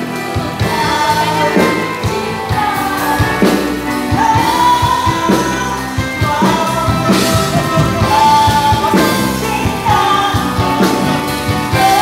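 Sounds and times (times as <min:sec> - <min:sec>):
drum beats: 0:00.0 - 0:12.0.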